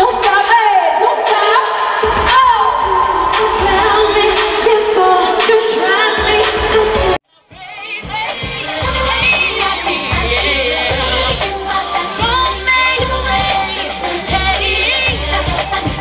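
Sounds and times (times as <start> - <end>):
female vocal group singing pop: 0.0 - 16.0
thudding beat: 1.3 - 7.2.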